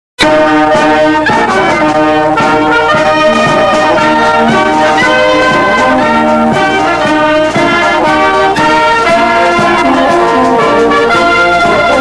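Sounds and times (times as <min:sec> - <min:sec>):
instrumental anthem with brass chords: 0:00.2 - 0:12.0.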